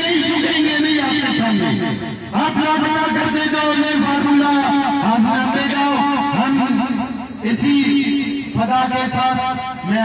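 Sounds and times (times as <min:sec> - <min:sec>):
man speaking over loudspeaker: 0:00.0 - 0:10.0.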